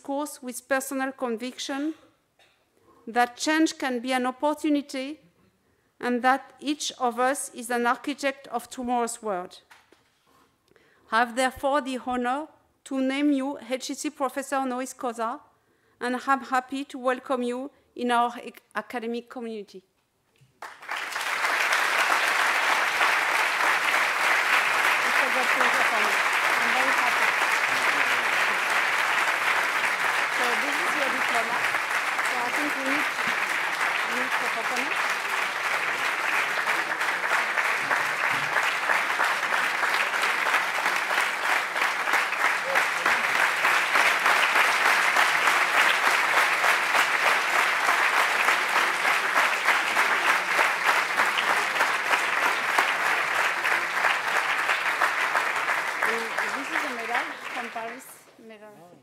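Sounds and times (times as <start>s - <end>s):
audience applause: 20.6s - 58.2s.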